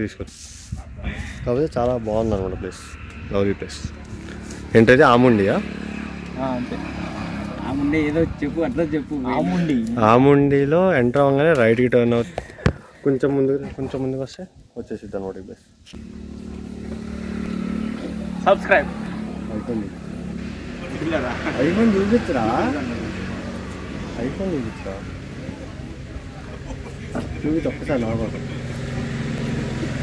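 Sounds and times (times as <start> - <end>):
vehicle engine humming: 1.2 - 14.3, 15.0 - 30.0.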